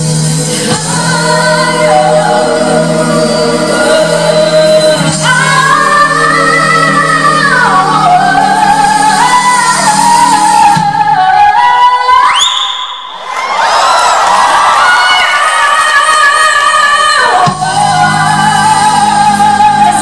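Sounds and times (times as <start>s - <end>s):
women singing a pop ballad: 0.0s - 12.5s, 14.8s - 20.0s.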